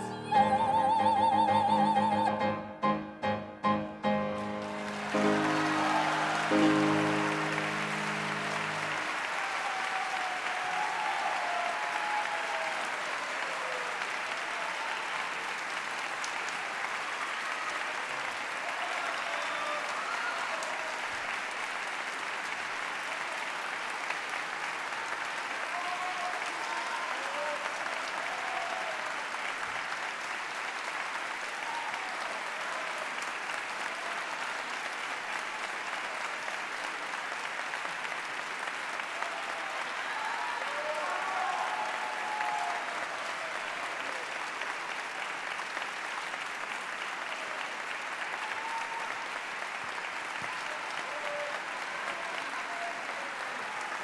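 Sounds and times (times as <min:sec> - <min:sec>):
audience applauding: 0:00.0 - 0:02.4, 0:03.6 - 0:54.0.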